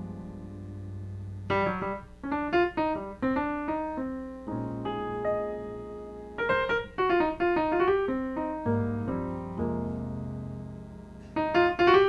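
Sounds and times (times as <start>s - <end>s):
solo jazz piano: 0.0s - 12.0s.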